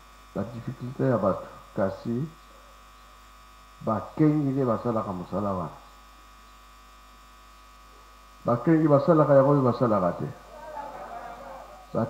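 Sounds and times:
low electrical hum: 0.0 - 12.0
man speaking: 0.4 - 2.4, 3.8 - 5.8, 8.5 - 12.0.

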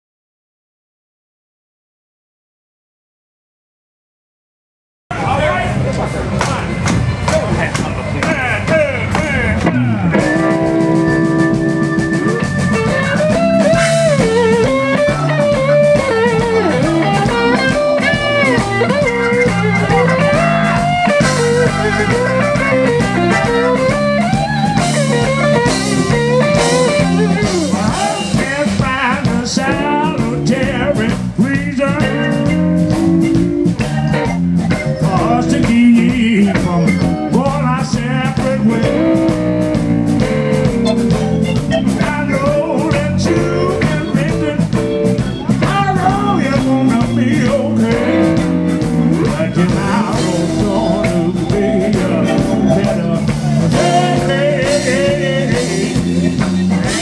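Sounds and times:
drums and cymbals: 5.1 - 57.0
live blues band playing: 5.1 - 57.0
steady bass: 5.1 - 57.0
held keyboard chords: 5.4 - 57.0
electric guitar lead: 9.1 - 57.0
man singing: 25.1 - 33.0, 33.7 - 39.5, 41.7 - 57.0.

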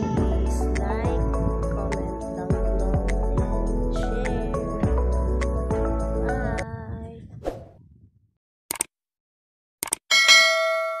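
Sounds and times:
notification bell dinging: 10.1 - 11.0.

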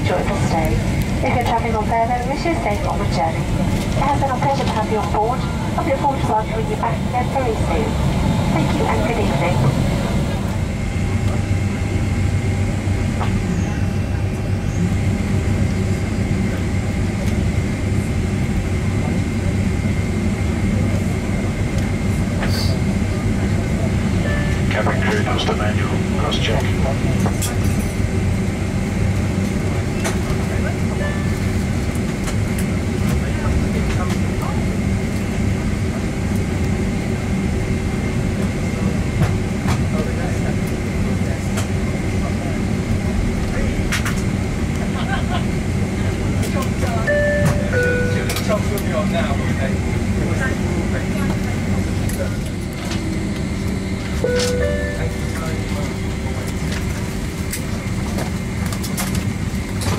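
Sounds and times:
faint voices: 0.0 - 11.9, 29.2 - 59.2
thin steady whine: 0.0 - 16.8, 40.0 - 59.9
low jet engine hum: 0.0 - 59.9.

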